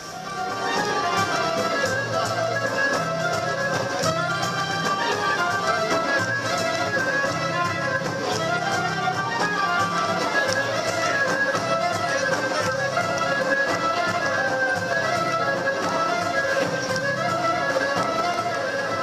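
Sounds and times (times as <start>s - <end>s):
folk dance band playing: 0.0s - 19.0s
violin melody: 0.0s - 19.0s.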